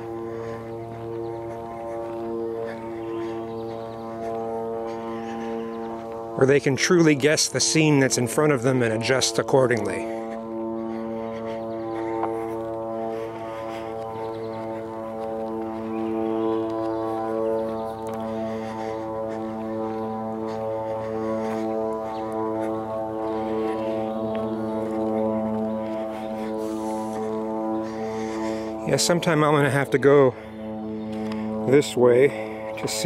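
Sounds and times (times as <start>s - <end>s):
steady low drone: 0.0s - 33.0s.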